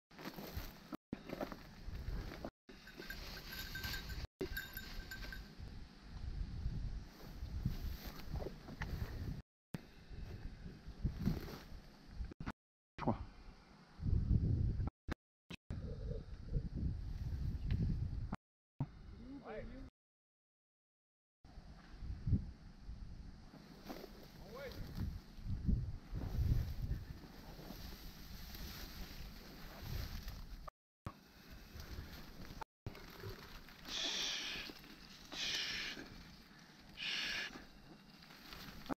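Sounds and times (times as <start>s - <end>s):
wind rumbling on microphone: 3.8s - 9.4s, 10.0s - 12.4s, 14.0s - 14.9s, 15.8s - 18.4s, 21.6s - 23.4s, 24.7s - 30.7s
wind buffeting microphone: 15.8s - 18.4s, 24.8s - 27.2s
rustling through dry brush: 26.1s - 30.6s, 31.2s - 38.9s.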